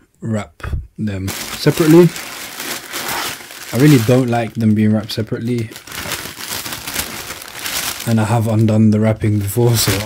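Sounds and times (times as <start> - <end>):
tissue paper crinkling: 1.3 - 10.0.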